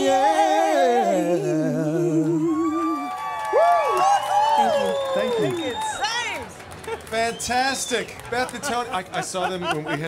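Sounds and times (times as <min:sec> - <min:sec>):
man and woman singing duet: 0:00.0 - 0:03.2
audience whooping and cheering: 0:02.2 - 0:08.0.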